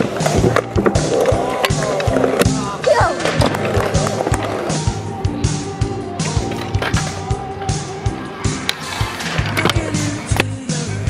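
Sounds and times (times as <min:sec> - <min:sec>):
scooter wheels rolling on concrete: 0:00.0 - 0:05.0
music with steady beat: 0:00.0 - 0:11.0.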